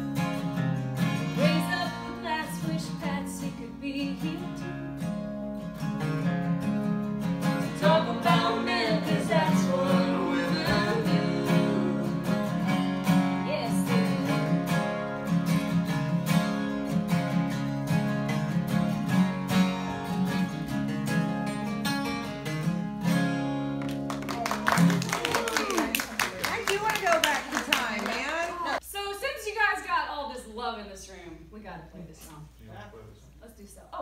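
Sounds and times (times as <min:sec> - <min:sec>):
acoustic guitars playing country: 0:00.0 - 0:28.8.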